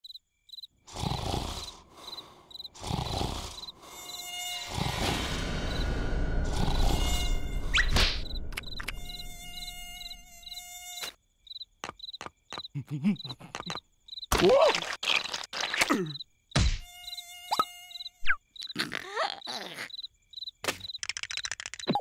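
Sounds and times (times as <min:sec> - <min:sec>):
crickets chirping: 0:00.0 - 0:22.0
mosquito buzzing whine: 0:02.8 - 0:11.6, 0:16.6 - 0:18.4
whooshes and buzzes: 0:04.5 - 0:10.5.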